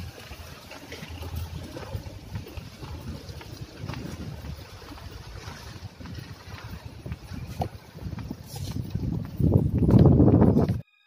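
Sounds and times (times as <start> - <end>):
wind buffeting microphone: 0.0 - 10.8.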